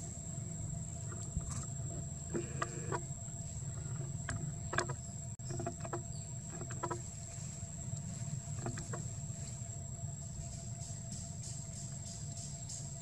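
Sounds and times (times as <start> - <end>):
high-pitched insect whine: 0.0 - 13.0
low steady rumble: 0.0 - 13.0.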